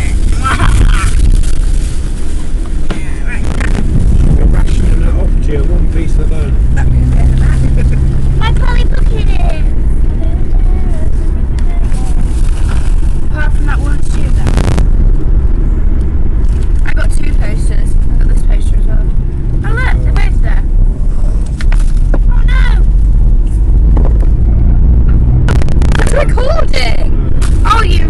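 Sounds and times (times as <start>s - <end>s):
car cabin road rumble: 0.0s - 28.0s
voices: 26.0s - 28.0s.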